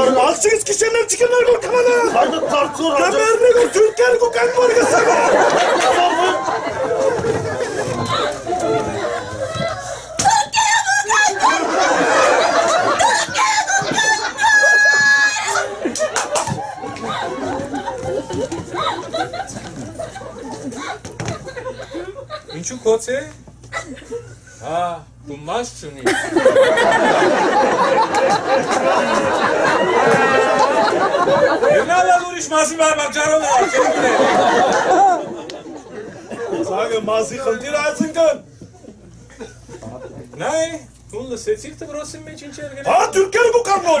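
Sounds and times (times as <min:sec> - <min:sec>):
several voices talking: 0:00.0 - 0:21.1
wordless vocal cries: 0:07.9 - 0:15.9.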